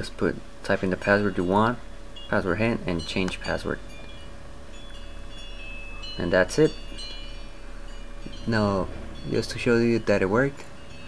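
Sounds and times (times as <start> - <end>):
low background hum: 0.0 - 11.0.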